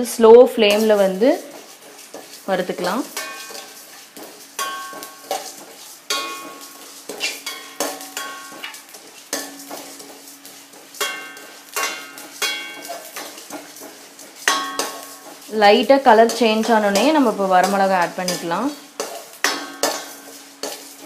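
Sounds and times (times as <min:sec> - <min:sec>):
seeds rattling on metal: 0:00.0 - 0:21.0
metal spoon scraping steel pan: 0:00.6 - 0:21.0.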